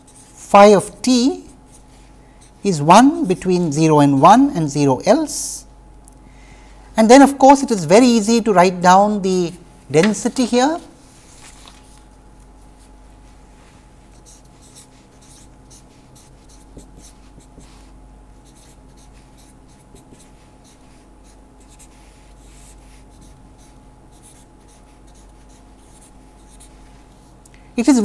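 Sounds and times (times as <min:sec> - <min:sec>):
faint steady hum: 0:00.0 - 0:28.0
marker scratching on paper: 0:13.7 - 0:27.4.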